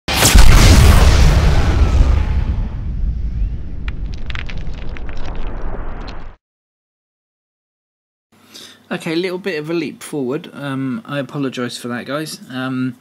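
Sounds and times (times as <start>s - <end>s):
deep rumbling boom: 0.1s - 6.4s
sharp crackles: 3.4s - 6.4s.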